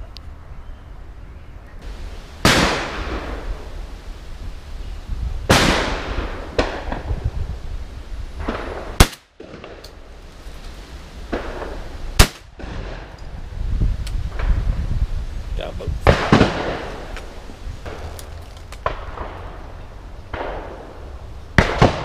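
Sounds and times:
shotgun shots echoing: 1.8s - 4.1s, 5.5s - 7.1s, 8.4s - 9.9s, 11.3s - 13.1s, 20.3s - 20.9s.

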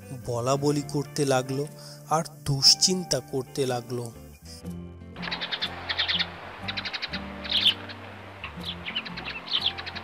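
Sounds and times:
soft background music: 0.0s - 10.0s
birds chirping: 5.2s - 10.0s.

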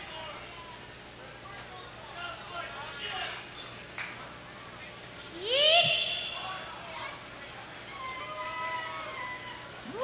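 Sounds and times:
electric guitar feedback: 5.4s - 9.2s.

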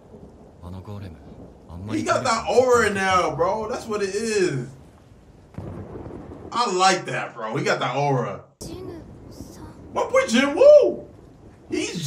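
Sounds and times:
low rumble: 0.0s - 7.6s
man speaking softly: 0.6s - 4.7s, 6.6s - 8.4s, 11.7s - 12.0s.

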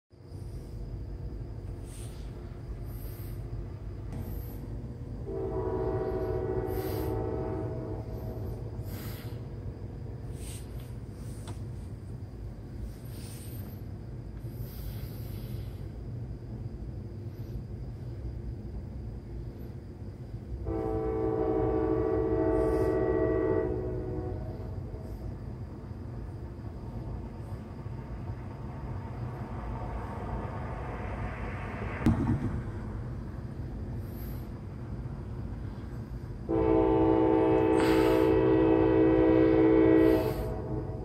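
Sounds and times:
train rumbling: 0.1s - 41.0s
train air horn blast: 5.2s - 9.4s, 20.6s - 25.3s, 36.5s - 41.0s.

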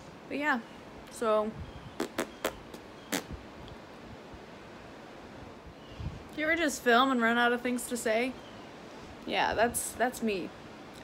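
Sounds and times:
open-air background hiss: 0.0s - 11.0s.

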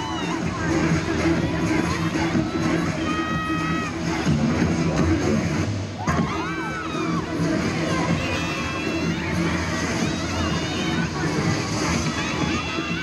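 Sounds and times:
crowd cheering and shouting: 0.0s - 13.0s
music playing loudly: 0.0s - 13.0s.

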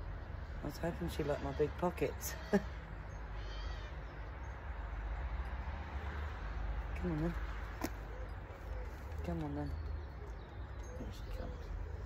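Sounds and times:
faint high animal call: 3.4s - 4.0s.

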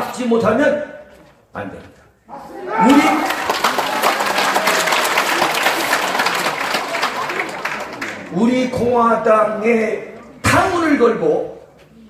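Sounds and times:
shouted cheer: 2.5s - 8.2s
audience applauding: 2.8s - 8.6s.

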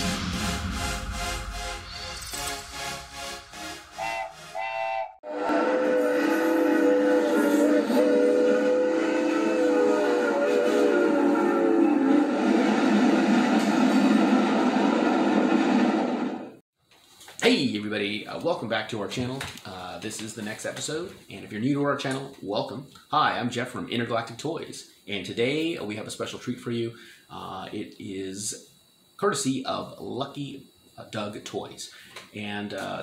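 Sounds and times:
steam train rushing noise: 0.0s - 16.6s
steam train whistle: 3.6s - 16.4s.

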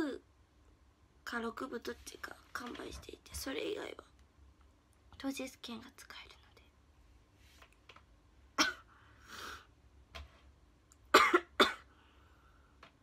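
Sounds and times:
woman speaking softly: 1.2s - 4.2s, 5.2s - 6.8s
sharp cough: 8.6s - 8.9s, 11.1s - 11.9s.

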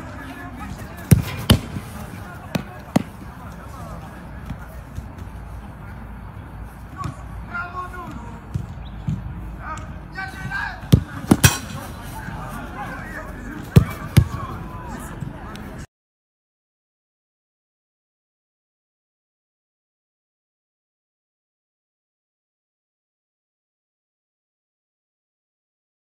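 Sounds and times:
football kicked on grass: 1.0s - 3.2s, 10.9s - 11.6s.

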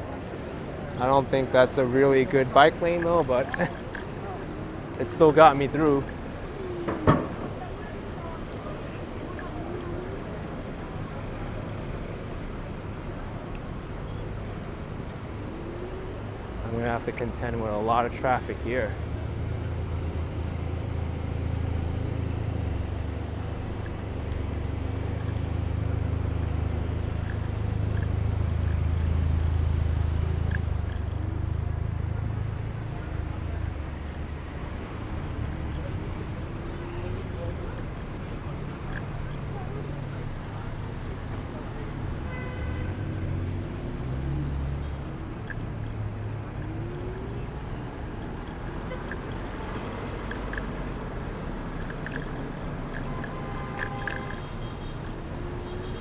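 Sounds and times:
cars idling in traffic: 0.0s - 56.0s.

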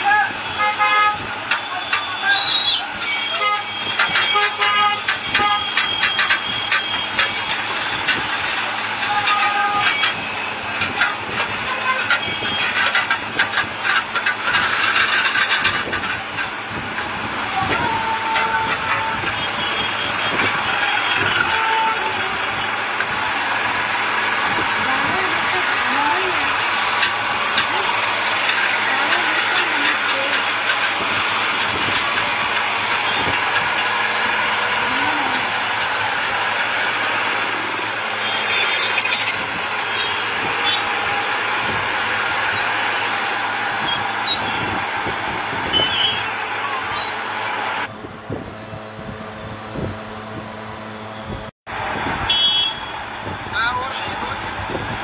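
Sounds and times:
people talking: 0.0s - 7.6s, 17.4s - 22.8s, 24.5s - 33.8s, 34.6s - 35.7s, 53.5s - 55.0s
diesel trucks running: 0.0s - 55.0s.

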